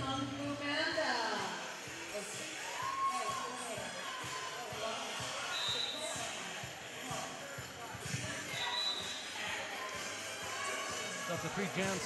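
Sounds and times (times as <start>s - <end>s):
referee whistle blasts: 5.5s - 6.0s, 8.6s - 9.2s.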